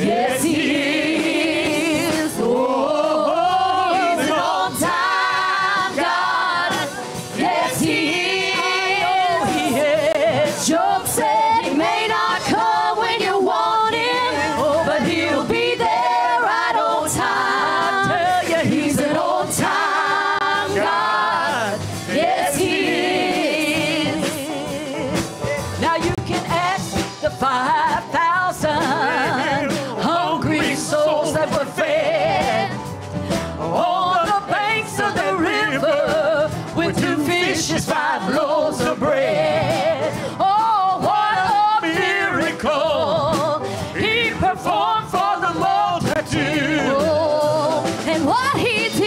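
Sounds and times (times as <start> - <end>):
vocal group singing in harmony: 0.0 - 49.0.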